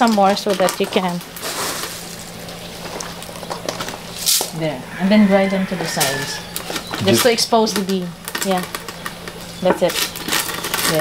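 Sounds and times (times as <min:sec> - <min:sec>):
coffee beans poured into mortar: 0:01.4 - 0:02.4.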